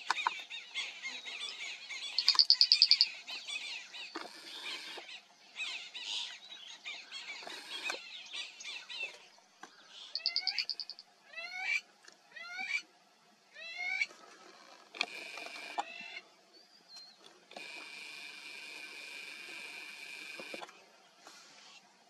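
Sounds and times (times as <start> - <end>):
bird calling: 0.0 - 5.0, 9.8 - 11.0.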